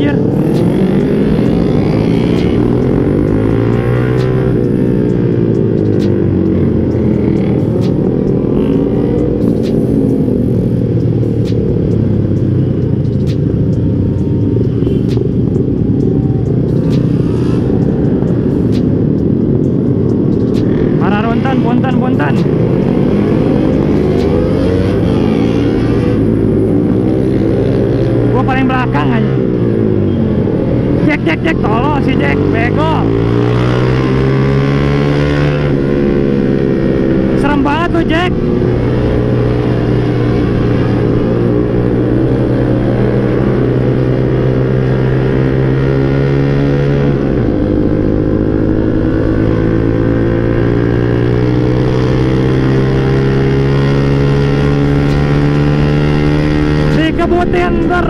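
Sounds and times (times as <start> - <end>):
motor scooter engine and exhaust: 0.0 - 58.0.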